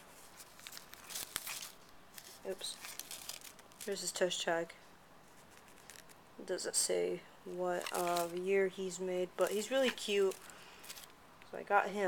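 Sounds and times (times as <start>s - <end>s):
plastic bag crinkling: 0.0s - 4.2s, 5.3s - 6.2s, 7.5s - 11.2s.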